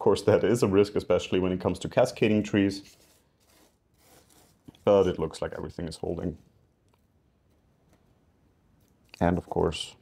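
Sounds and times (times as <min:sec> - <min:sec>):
hand rustling soil: 0:02.2 - 0:06.3.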